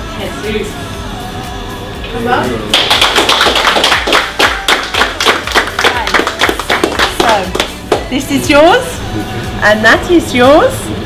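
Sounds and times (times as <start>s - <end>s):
people clapping: 2.6s - 8.1s.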